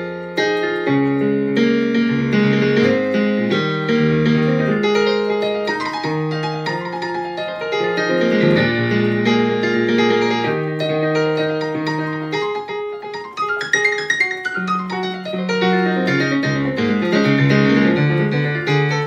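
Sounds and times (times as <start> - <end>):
solo piano: 0.0 - 19.0.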